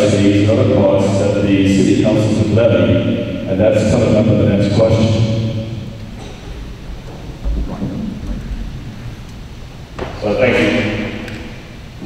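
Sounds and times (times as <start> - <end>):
microphone handling rumble: 6.0 - 11.0.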